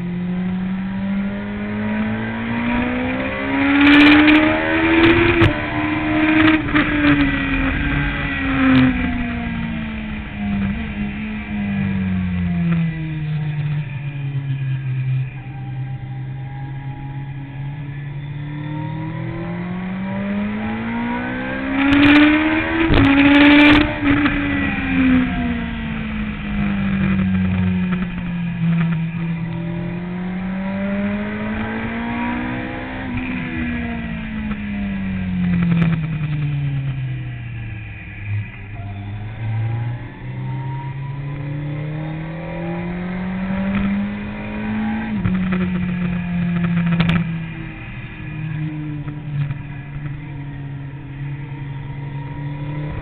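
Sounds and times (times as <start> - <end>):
motorcycle engine revving: 0.0 - 53.0.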